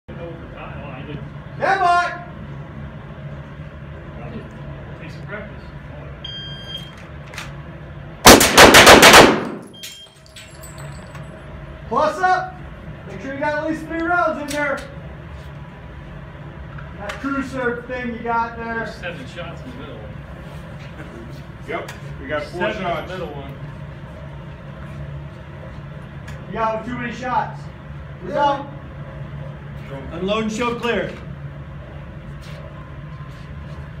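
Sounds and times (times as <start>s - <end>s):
low murmuring background noise: 0.1s - 8.2s, 10.8s - 34.0s
low indoor hum: 0.1s - 34.0s.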